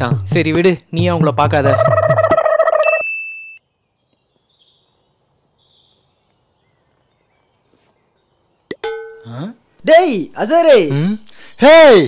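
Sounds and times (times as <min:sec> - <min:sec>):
outdoor ambience: 0:00.0 - 0:12.0
faint bird chirps: 0:01.9 - 0:10.2.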